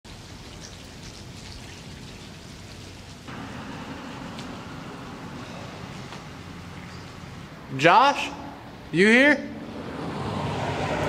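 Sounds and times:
rain falling: 0:00.1 - 0:07.7.

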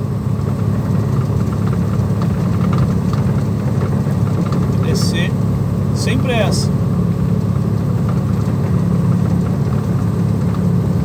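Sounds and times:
diesel truck engine droning: 0:00.0 - 0:11.0.

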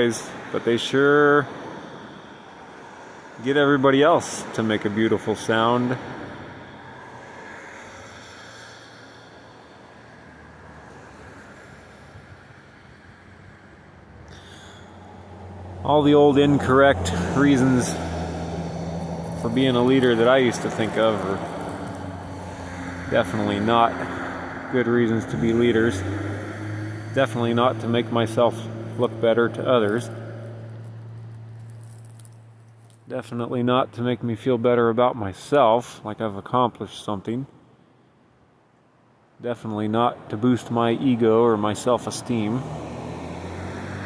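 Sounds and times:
hiss: 0:07.5 - 0:09.8.

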